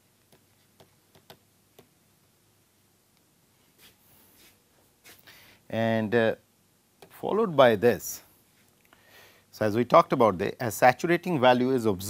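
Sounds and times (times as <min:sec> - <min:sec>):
stylus tapping on tablet: 0:00.3 - 0:02.0.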